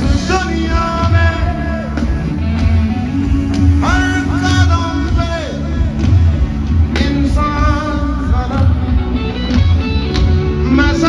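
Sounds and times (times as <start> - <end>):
loud live band music: 0.0 - 11.0.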